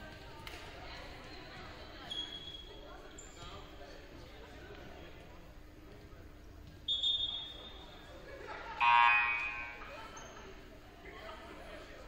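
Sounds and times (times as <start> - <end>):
voices talking: 8.7 - 10.4.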